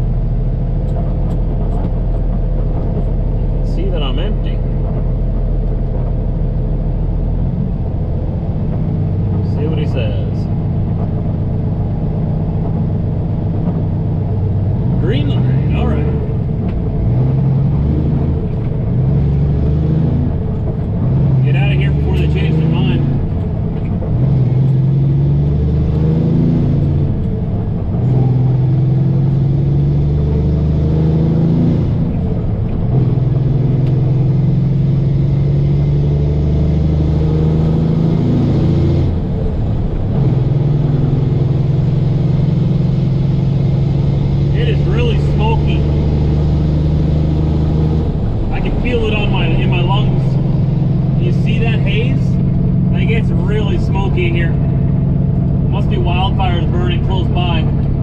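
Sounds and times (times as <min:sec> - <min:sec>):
truck engine shifting up through gears: 0:00.0 - 0:58.0.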